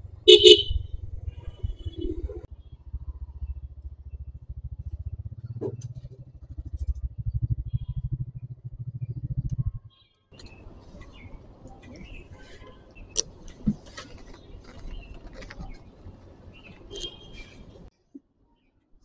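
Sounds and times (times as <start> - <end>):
motorcycle engine running: 0.0 - 17.9
vehicle horn honk: 0.3 - 2.2, 16.9 - 17.6.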